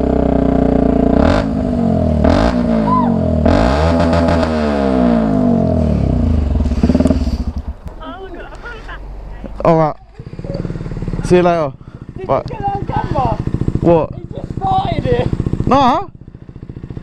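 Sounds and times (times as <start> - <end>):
motorcycle engine revving: 0.0 - 8.3, 9.2 - 17.0.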